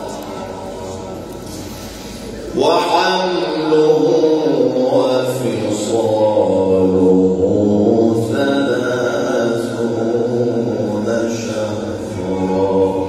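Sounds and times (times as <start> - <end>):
man reciting in long ornamented note: 0.0 - 13.0.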